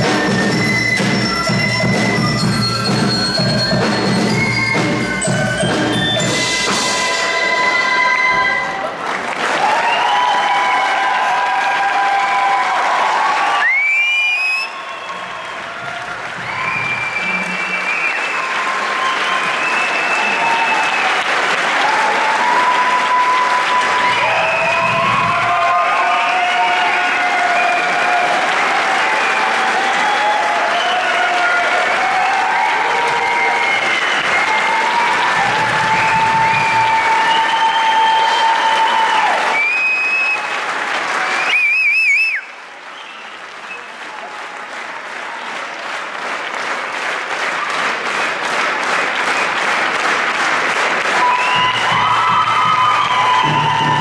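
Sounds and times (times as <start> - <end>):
whistles from crowd: 0.0 - 6.5, 9.6 - 11.1, 13.3 - 21.6, 22.2 - 44.2, 51.1 - 54.0
audience applauding: 0.0 - 54.0.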